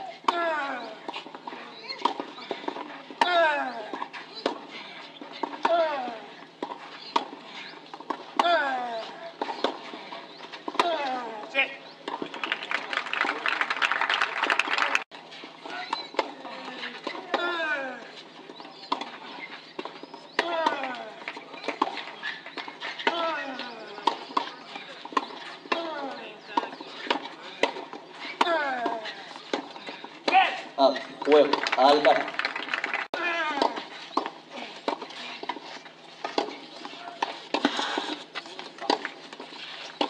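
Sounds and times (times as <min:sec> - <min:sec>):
shouting and voices: 0:00.0 - 0:06.6, 0:07.2 - 0:35.5.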